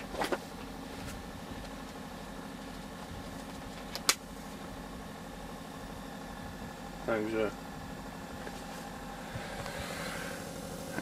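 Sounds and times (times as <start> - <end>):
mechanical hum in truck cab: 0.0 - 11.0.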